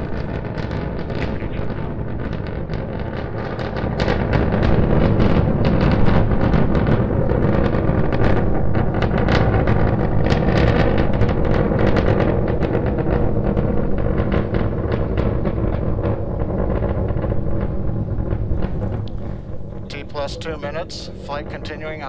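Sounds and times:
rocket engines rumbling and crackling: 0.0s - 22.0s.

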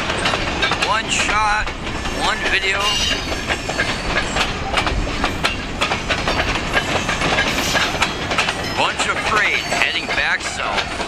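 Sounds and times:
train wheels clanking over rail joints: 0.0s - 11.0s
high wheel squeal: 2.1s - 5.6s.

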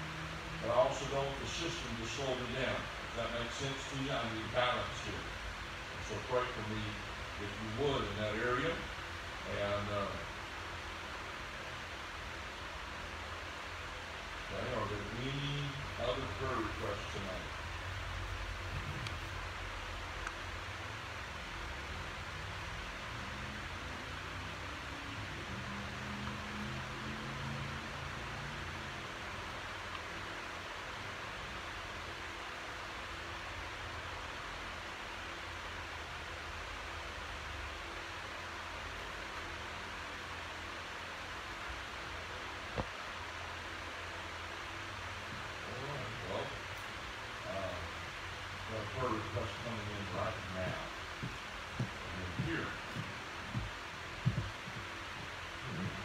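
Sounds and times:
room tone hiss: 0.0s - 56.0s
low hum: 33.1s - 56.0s.

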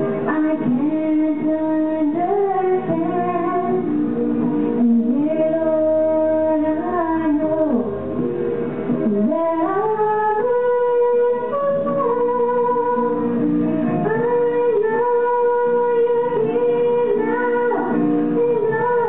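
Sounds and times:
slow sung melody: 0.0s - 19.0s.

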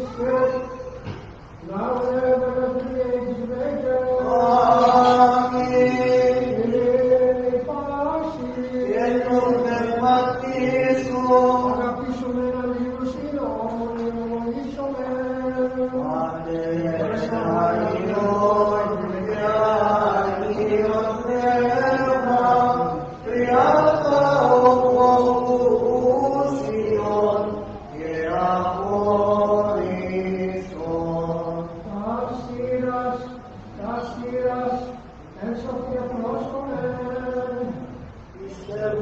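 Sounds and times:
person chanting liturgical chant: 0.0s - 1.0s, 1.6s - 39.0s.

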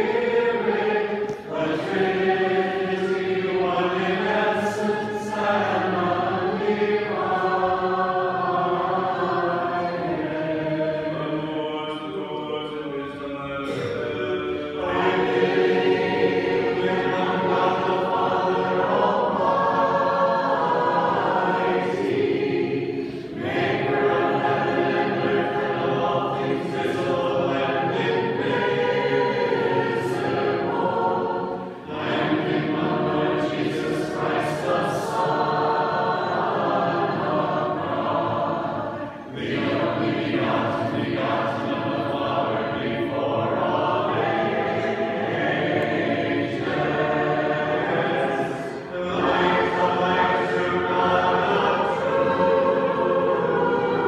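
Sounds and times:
choir chanting a cappella: 0.0s - 54.0s.

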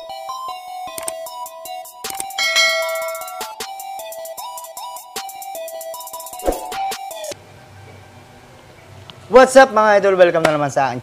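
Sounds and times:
electronic intro music: 6.4s - 7.2s.

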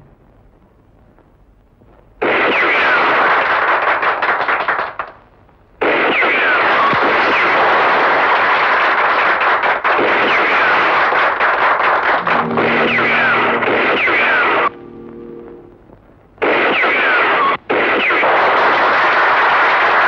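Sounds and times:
crowd applauding and cheering: 6.8s - 15.7s, 18.5s - 20.0s.

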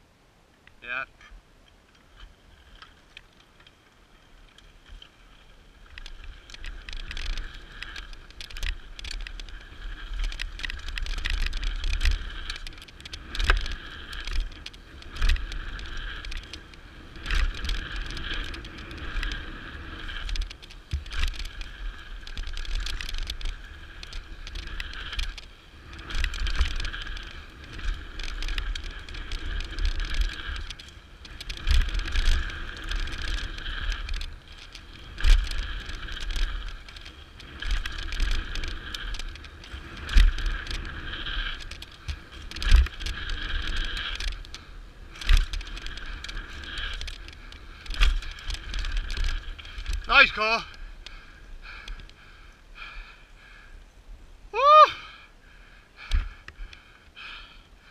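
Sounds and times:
tyres on packed dirt: 0.0s - 57.9s
wind rumbling on microphone: 0.7s - 57.9s
bike rattling: 1.8s - 53.8s, 54.5s - 57.9s.

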